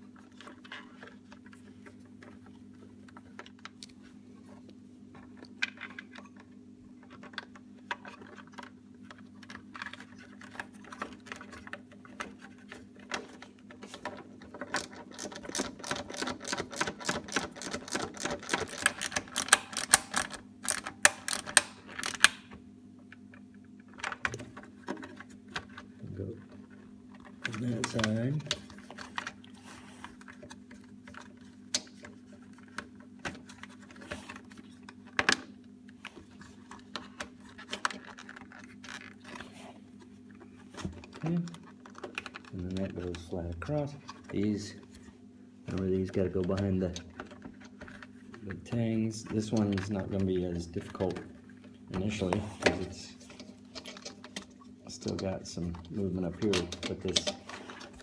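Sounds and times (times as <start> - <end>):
steady low hum: 0.0 - 58.0
clicks and rustles of plastic trim: 5.2 - 45.1, 45.7 - 58.0
rapid clicks and crackles: 7.0 - 22.4.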